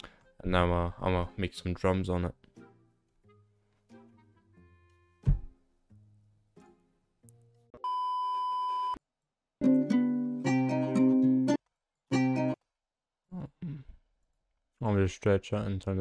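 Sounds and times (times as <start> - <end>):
dark guitar melody: 9.6 - 12.6.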